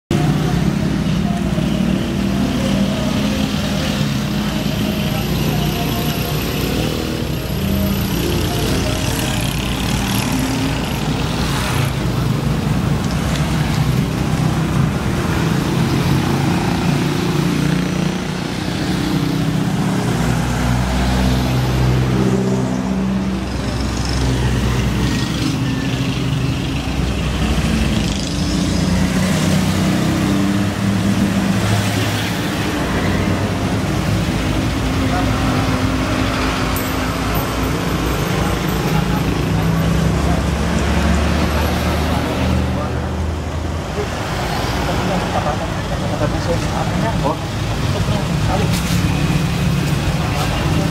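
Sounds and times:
passing road traffic: 0:00.1 - 0:50.9
people's voices: 0:00.1 - 0:50.9
slow-moving vehicle engines: 0:00.1 - 0:50.9.

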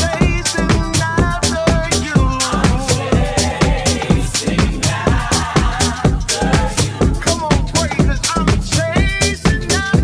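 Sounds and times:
deep house music: 0:00.0 - 0:10.0.

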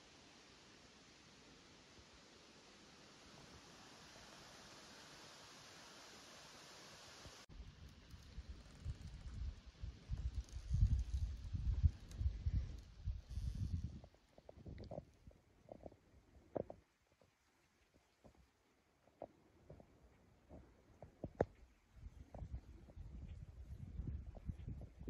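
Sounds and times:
steady hiss: 0:00.0 - 0:14.6
wind buffeting microphone: 0:08.3 - 0:15.1, 0:21.2 - 0:25.0.

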